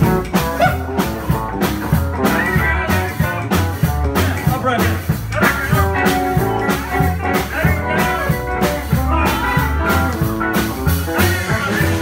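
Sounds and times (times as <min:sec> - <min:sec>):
rockabilly band playing: 0:00.0 - 0:12.0.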